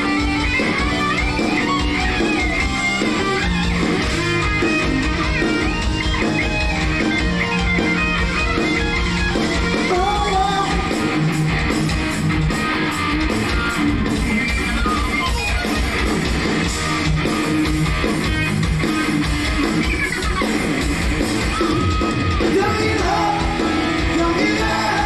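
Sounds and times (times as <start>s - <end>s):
drums: 0.0s - 25.0s
electric guitar: 0.0s - 25.0s
hard rock band playing: 0.0s - 25.0s.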